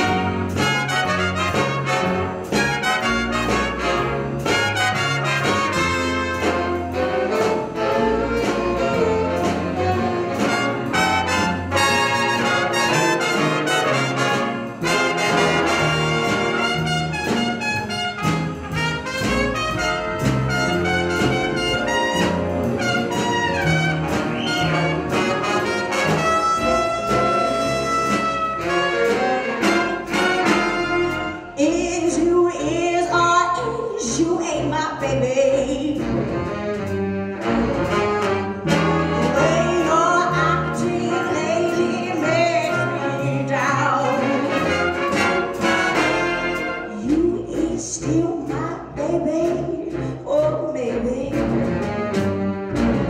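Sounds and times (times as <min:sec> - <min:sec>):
saxophones: 0:00.0 - 0:31.6
trumpet section: 0:00.0 - 0:31.9, 0:36.0 - 0:47.2
drum kit: 0:00.0 - 0:32.2, 0:35.6 - 0:50.6, 0:51.2 - 0:53.0
upright bass: 0:00.0 - 0:53.0.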